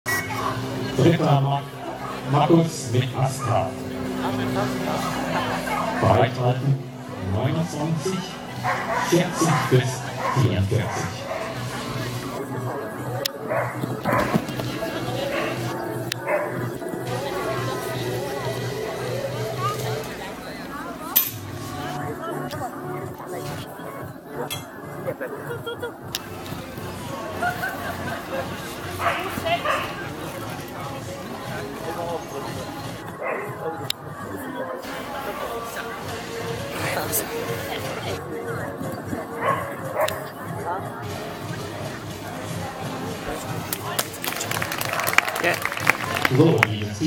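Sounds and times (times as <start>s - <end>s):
crowd chatter: 0.0s - 47.0s
background music: 0.1s - 47.0s
murmur of onlookers: 0.1s - 47.0s
dog barking: 8.6s - 11.6s, 13.5s - 14.4s, 29.0s - 30.0s, 33.2s - 33.6s, 39.4s - 40.2s.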